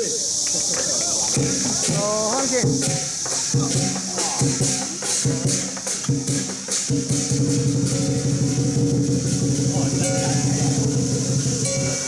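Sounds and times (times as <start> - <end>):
large drum roll: 1.3 - 12.0.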